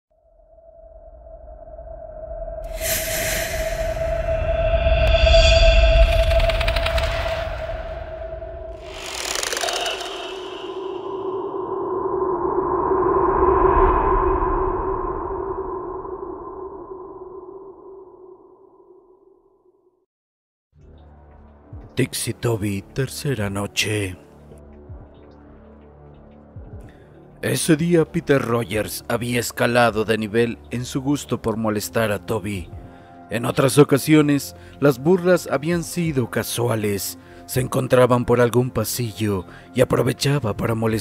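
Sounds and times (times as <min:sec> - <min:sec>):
low rumble: 0:00.2 - 0:19.1
synthesized steady tone: 0:00.6 - 0:19.1.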